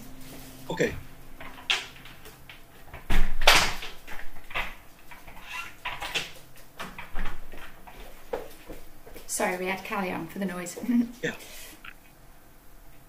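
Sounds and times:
faint knocks and rustles: 0:03.9 - 0:10.0.

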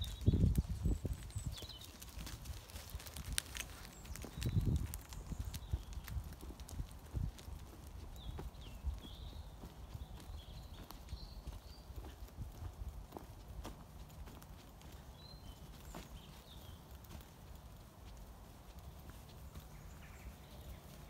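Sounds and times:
footsteps on muddy ground: 0:00.0 - 0:21.0.

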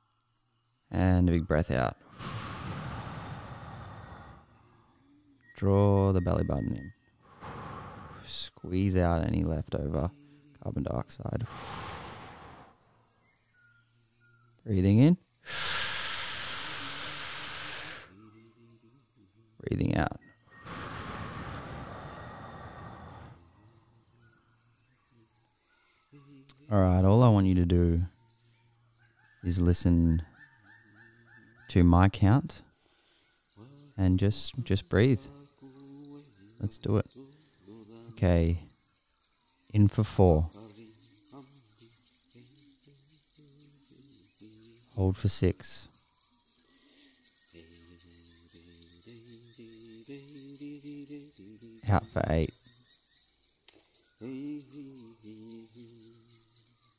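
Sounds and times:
running water hiss: 0:00.0 - 0:05.5, 0:07.2 - 0:30.1, 0:31.8 - 0:56.9
person breathing in deeply: 0:02.0 - 0:04.7, 0:07.2 - 0:08.3, 0:11.4 - 0:12.9, 0:15.5 - 0:18.2, 0:20.6 - 0:23.6.

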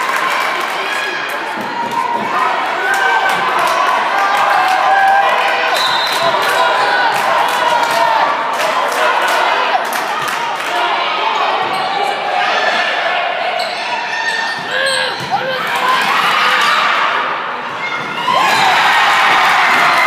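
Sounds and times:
crowd cheering: 0:00.0 - 0:20.0
crowd noise and shouts: 0:00.0 - 0:20.0.

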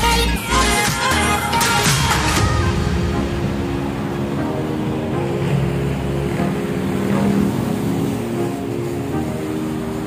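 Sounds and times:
background music: 0:00.0 - 0:10.0
road traffic: 0:00.0 - 0:10.0
vehicle engine passing: 0:02.3 - 0:10.0.

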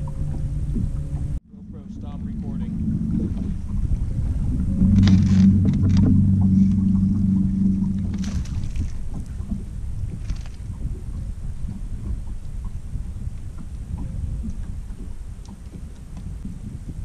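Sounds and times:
electric trolling motor humming: 0:00.0 - 0:17.0
water and wind noise: 0:00.0 - 0:17.0.

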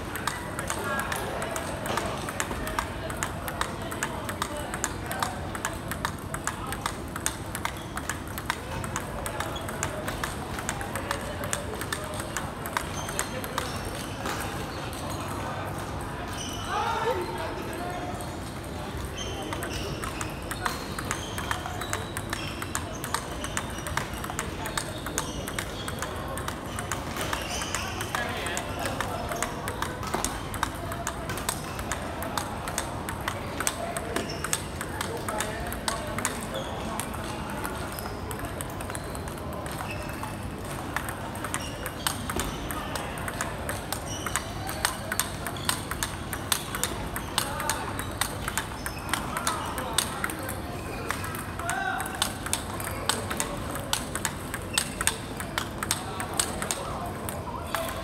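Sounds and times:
table tennis ball clicking: 0:00.0 - 0:15.1, 0:18.4 - 0:58.0
voices chattering: 0:00.1 - 0:58.0.

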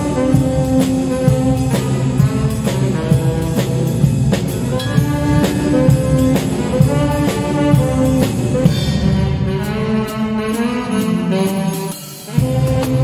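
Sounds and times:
drum kit beat on snare and cymbals: 0:00.0 - 0:13.0
saxophones playing melody: 0:00.0 - 0:13.0.

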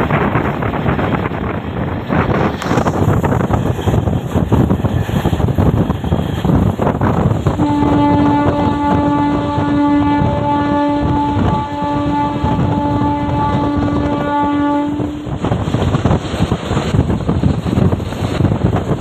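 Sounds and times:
train rolling noise: 0:00.0 - 0:19.0
wind noise: 0:00.0 - 0:19.0
train horn blast: 0:07.4 - 0:15.6.

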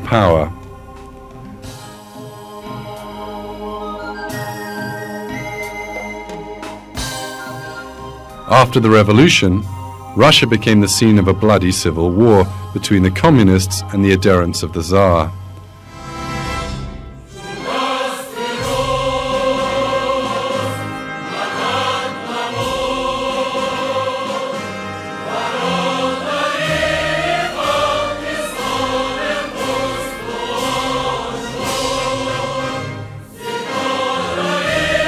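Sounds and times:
choir singing slow chords: 0:00.0 - 0:08.5, 0:12.1 - 0:35.0.

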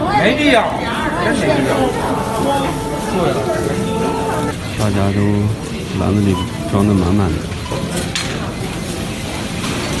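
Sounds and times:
store hubbub: 0:00.0 - 0:10.0.

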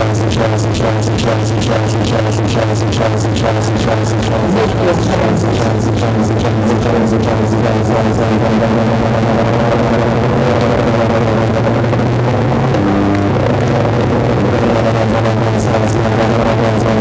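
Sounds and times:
low synth drone: 0:00.0 - 0:17.0
techno kick drum beat: 0:00.0 - 0:17.0.

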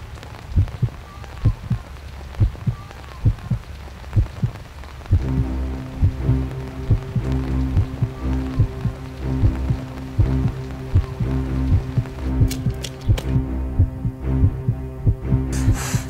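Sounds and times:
soft rain-like hiss: 0:00.0 - 0:16.0.

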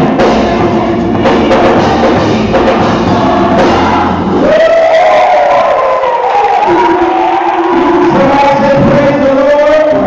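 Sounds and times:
gospel choir singing: 0:00.0 - 0:09.7
drum kit: 0:00.0 - 0:10.0.

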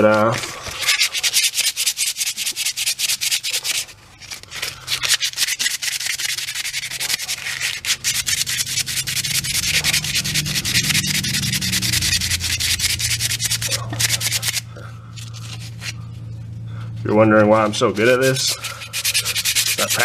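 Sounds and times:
sandpaper scraping wood: 0:00.0 - 0:16.0, 0:17.6 - 0:20.0.

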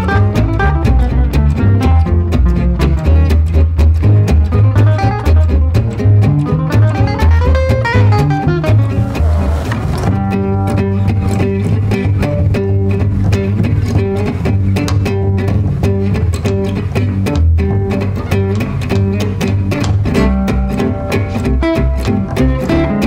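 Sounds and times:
acoustic guitars playing jazz: 0:00.0 - 0:23.0
pizzicato double bass: 0:00.0 - 0:23.0.

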